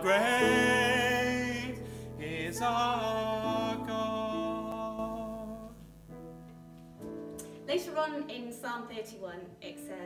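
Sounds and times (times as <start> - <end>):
held backing chord: 0.0 - 8.0.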